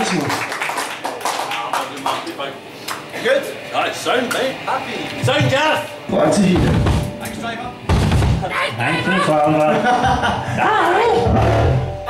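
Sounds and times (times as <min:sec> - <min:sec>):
booming bass and drums: 0:11.3 - 0:12.0.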